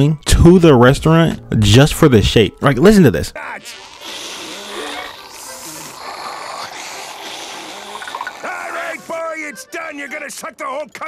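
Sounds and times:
drink slurped through a straw: 0:03.8 - 0:08.6.

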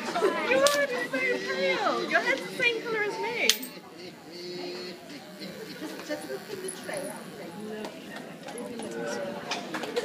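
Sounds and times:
group of people talking: 0:00.0 - 0:10.0.

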